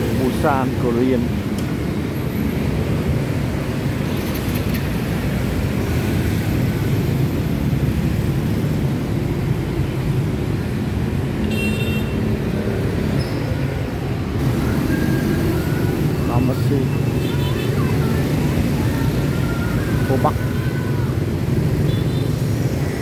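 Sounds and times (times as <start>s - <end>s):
motorbike engines passing: 0.0s - 23.0s.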